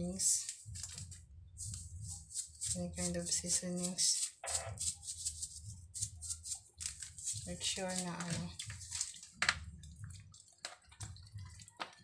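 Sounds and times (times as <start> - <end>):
hands rubbing seasoning into chicken: 0.5 - 9.2.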